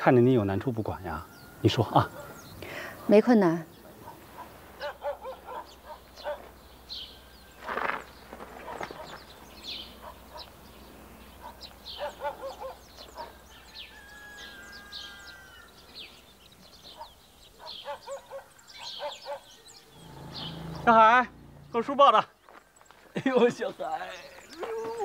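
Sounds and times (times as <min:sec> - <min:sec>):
small birds chirping: 0:00.0 - 0:25.0
chickens calling: 0:00.1 - 0:25.0.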